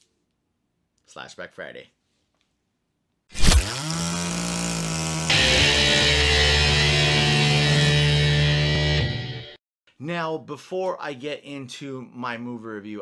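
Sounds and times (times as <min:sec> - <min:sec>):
loud distorted drone: 0:05.3 - 0:09.5.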